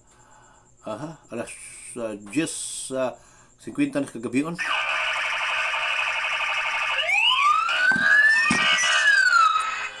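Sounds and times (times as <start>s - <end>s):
pulsing alarm tone: 4.6s - 10.0s
siren wails rising and falling: 4.6s - 10.0s.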